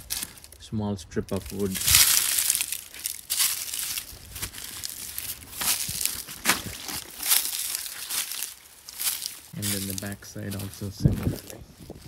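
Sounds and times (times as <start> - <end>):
footsteps crunching dry leaves: 0.0 - 0.6, 1.2 - 12.0.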